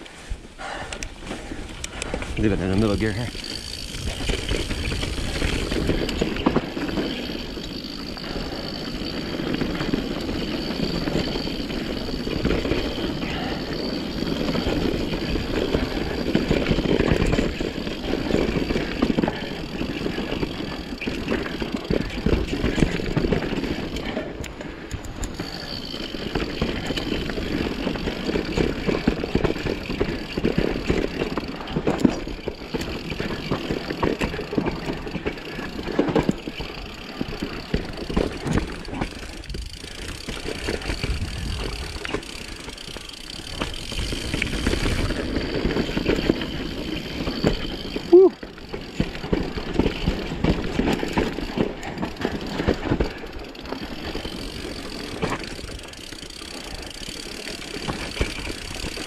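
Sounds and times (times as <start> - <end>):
bike chain and frame rattling: 0.0 - 59.0
bike tyres rumbling over dirt: 0.0 - 59.0.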